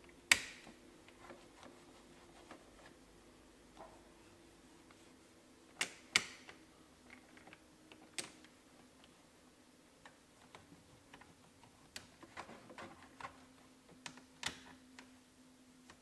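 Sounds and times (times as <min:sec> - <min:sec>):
cloth wiping: 0:01.2 - 0:03.0.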